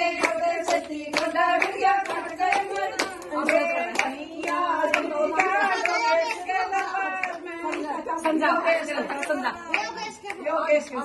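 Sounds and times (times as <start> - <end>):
women singing: 0.0 - 11.0.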